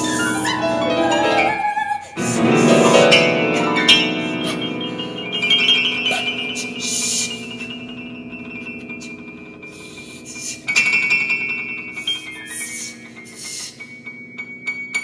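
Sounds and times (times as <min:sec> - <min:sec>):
grand piano music: 0:00.0 - 0:15.0.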